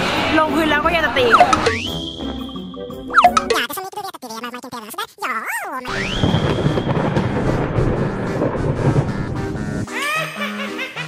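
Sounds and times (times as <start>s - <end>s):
deep steady rumbling: 6.7s - 9.8s.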